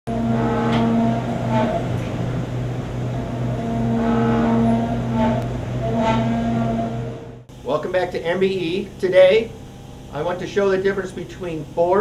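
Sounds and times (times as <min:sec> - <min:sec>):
engine running: 0:00.1 - 0:10.2.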